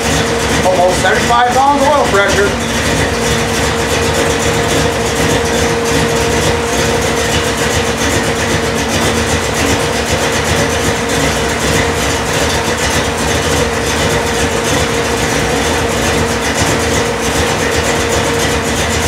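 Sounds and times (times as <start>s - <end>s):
car engine idling lumpily: 0.0s - 19.0s.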